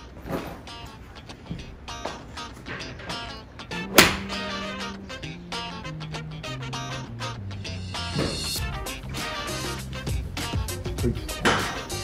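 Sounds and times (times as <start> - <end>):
background music with bass line: 1.5 - 12.0.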